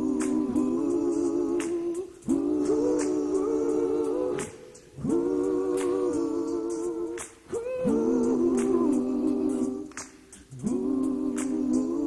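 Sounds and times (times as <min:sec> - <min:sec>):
light percussive ticks: 0:00.0 - 0:07.7, 0:08.3 - 0:12.0
voices singing close harmony: 0:00.0 - 0:12.0.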